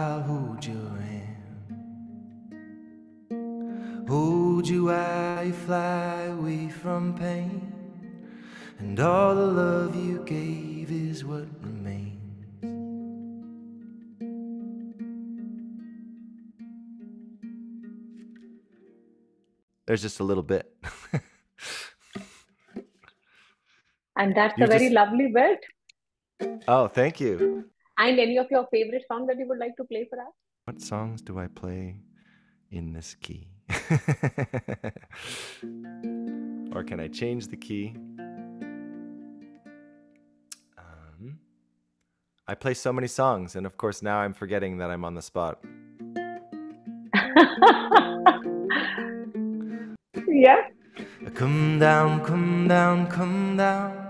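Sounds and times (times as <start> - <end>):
fingerstyle acoustic guitar: 0.0 - 19.1, 35.6 - 40.7, 45.6 - 53.9.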